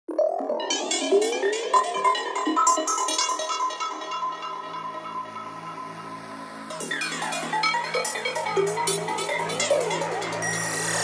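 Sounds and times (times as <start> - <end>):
psytrance electronic music: 0.2 - 11.0.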